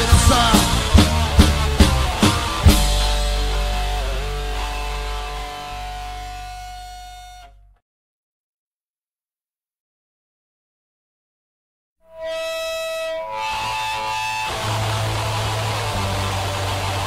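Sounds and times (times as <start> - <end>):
punk band drum and guitar hits: 0.0 - 5.0
ringing guitar chord: 0.0 - 7.7, 12.1 - 17.0.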